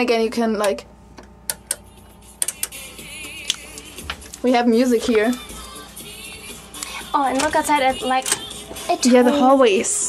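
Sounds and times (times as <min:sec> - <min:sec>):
music from speaker: 0:01.8 - 0:10.0.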